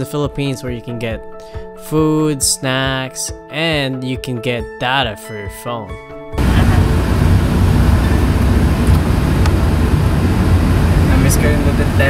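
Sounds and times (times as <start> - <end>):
in-car engine and road rumble: 6.4 - 12.0.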